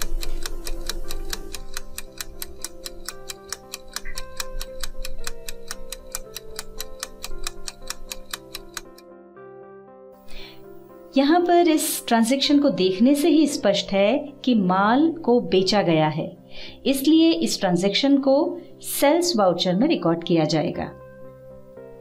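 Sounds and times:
fast clock ticking: 0.0 - 9.0
soft background music: 0.0 - 22.0.

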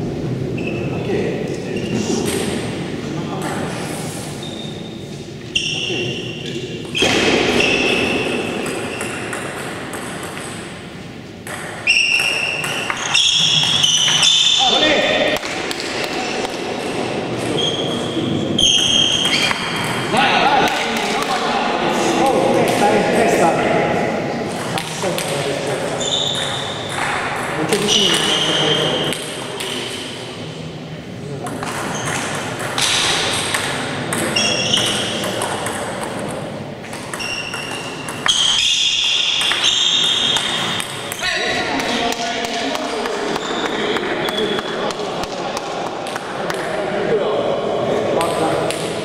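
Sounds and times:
table tennis ball hitting bats: 2.2 - 2.8, 6.9 - 17.6, 18.8 - 21.6, 24.5 - 30.2, 31.4 - 46.7, 48.2 - 49.0
voices: 11.9 - 37.5.

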